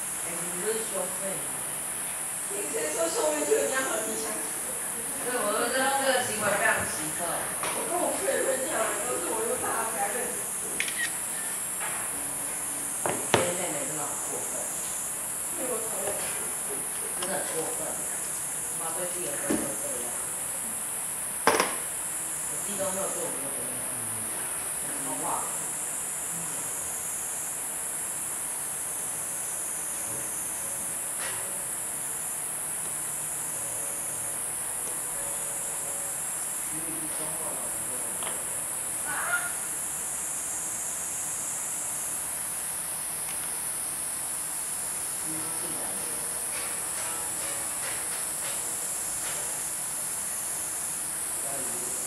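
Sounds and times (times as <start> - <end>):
high-pitched insect chorus: 0.0 - 52.0.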